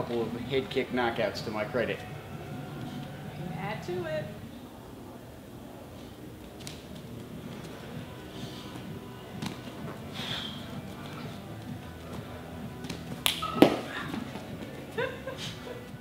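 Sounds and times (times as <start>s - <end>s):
background music: 0.0s - 4.5s, 6.8s - 16.0s.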